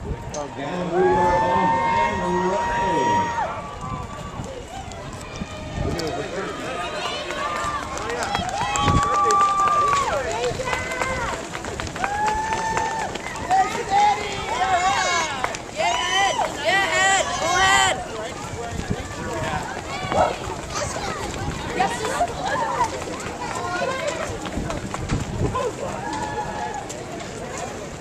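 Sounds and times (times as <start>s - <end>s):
runners' footfalls on pavement: 0.0s - 28.0s
spectators shouting and cheering: 0.0s - 28.0s.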